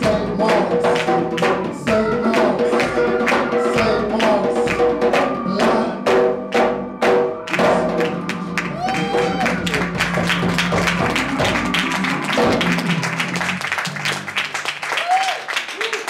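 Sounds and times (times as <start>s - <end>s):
djembe strikes: 0.0s - 13.1s
bass and keyboard chord: 5.5s - 14.7s
audience applause: 7.5s - 16.0s
crowd member whooping: 8.6s - 13.5s, 14.9s - 16.0s.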